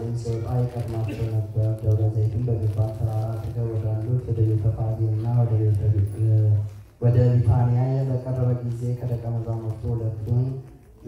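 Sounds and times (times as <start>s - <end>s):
man chanting scripture reading: 0.0s - 11.0s.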